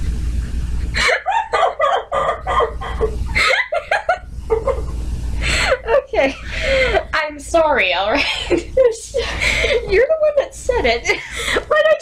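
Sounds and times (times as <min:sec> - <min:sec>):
woman laughing: 0:01.0 - 0:07.2, 0:08.1 - 0:12.0.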